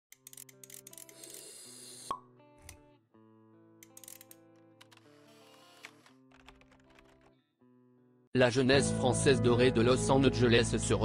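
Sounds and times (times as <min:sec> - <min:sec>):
soft background music: 0:00.1 - 0:07.2, 0:08.3 - 0:11.0.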